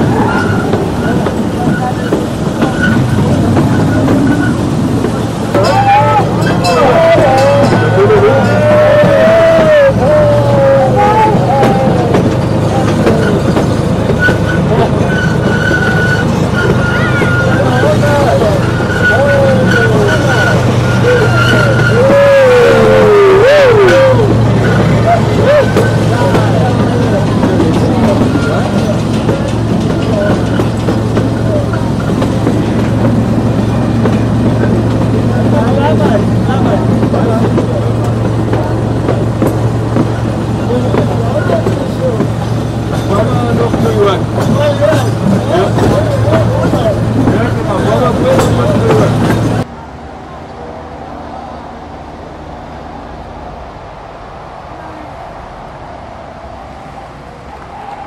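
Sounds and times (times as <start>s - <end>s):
high wheel squeal: 0.0s - 49.6s
passengers' voices: 0.0s - 58.0s
small train low hum: 0.0s - 58.0s.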